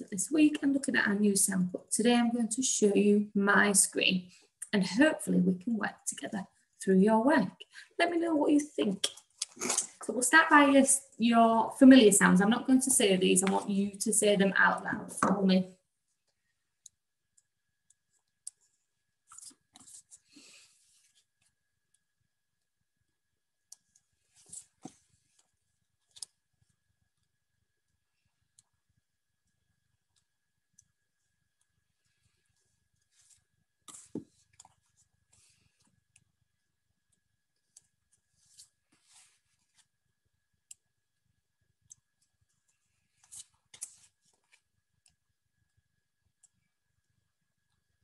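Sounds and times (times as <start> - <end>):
flashcards rustling: 19.2 - 21.4, 42.6 - 44.7.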